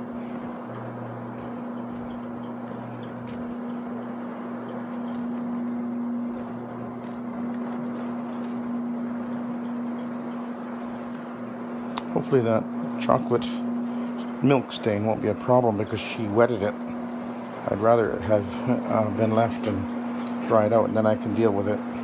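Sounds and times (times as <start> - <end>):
carpet cleaning machine humming: 0.0 - 22.0.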